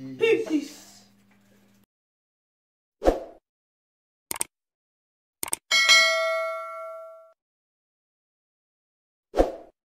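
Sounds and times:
metallic bell-like ding: 5.7s - 7.4s.

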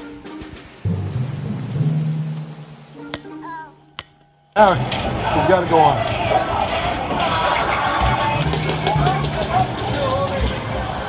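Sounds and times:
background voices: 4.8s - 11.0s.

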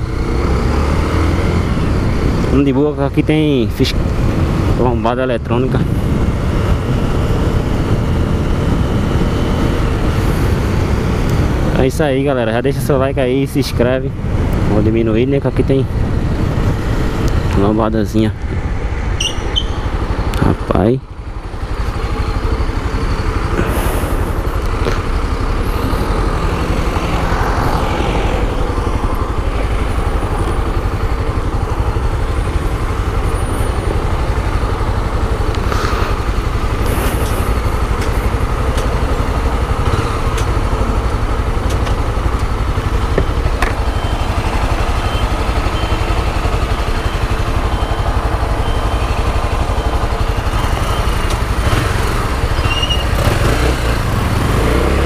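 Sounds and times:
motorcycle engine idling: 27.4s - 54.9s.

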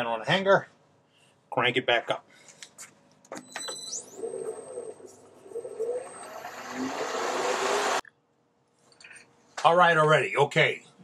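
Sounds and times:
wood lathe whining and spinning: 4.0s - 8.0s.

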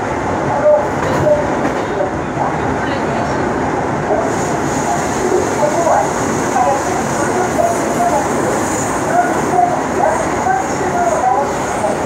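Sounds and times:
train wheels on rail: 0.0s - 12.0s.

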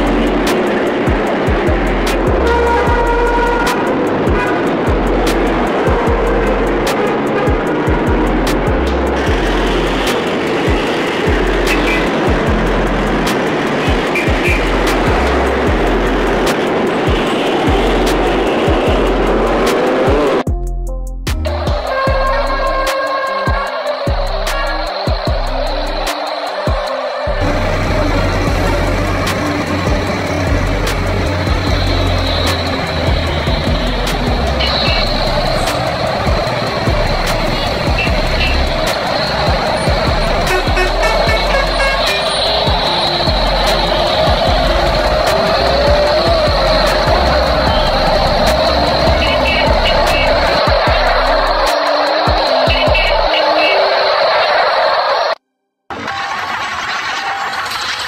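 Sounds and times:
background music: 0.0s - 55.4s
truck engine rumble: 0.0s - 58.0s.

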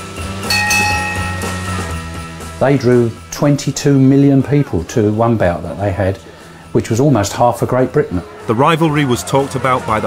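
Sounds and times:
bell ringing: 0.4s - 2.9s.

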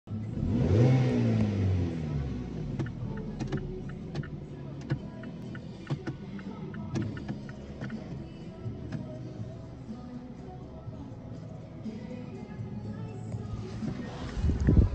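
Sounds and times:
car engine revving and idling: 0.1s - 10.4s, 11.7s - 14.9s.

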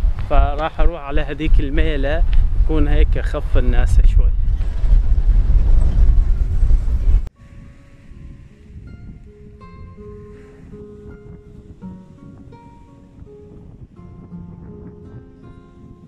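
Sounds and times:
wind buffeting microphone: 0.0s - 16.0s
quiet acoustic guitar music: 7.3s - 16.0s.

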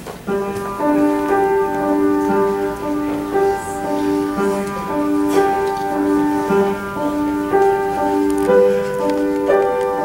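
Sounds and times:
electric keyboard chords: 0.0s - 10.0s.

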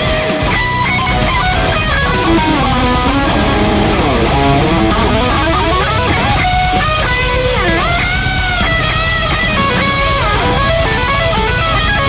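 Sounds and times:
electric guitar lead solo: 0.0s - 12.0s
heavy metal backing track: 0.0s - 12.0s.

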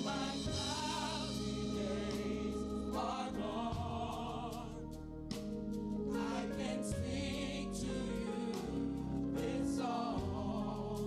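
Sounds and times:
held accompaniment chords: 0.0s - 11.0s
vocal ensemble singing in harmony: 0.0s - 11.0s.

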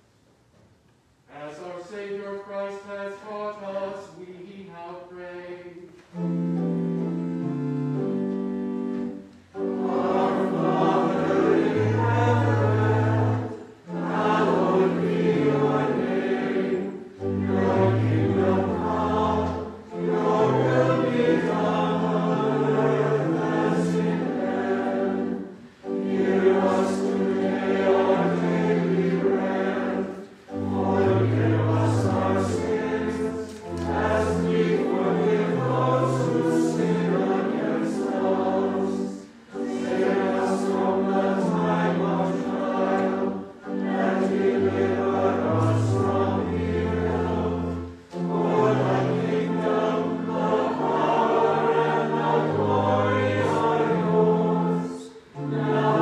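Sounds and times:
choir singing: 1.3s - 56.0s.

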